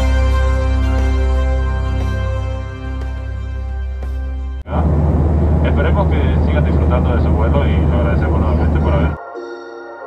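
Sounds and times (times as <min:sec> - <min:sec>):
airliner cabin drone: 0:04.6 - 0:09.2.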